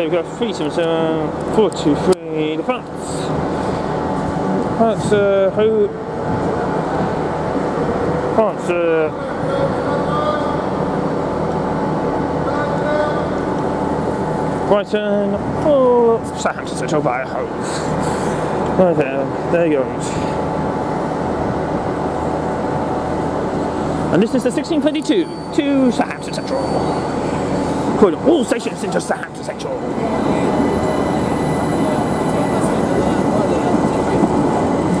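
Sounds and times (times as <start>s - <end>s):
train equipment hum: 0.0s - 35.0s.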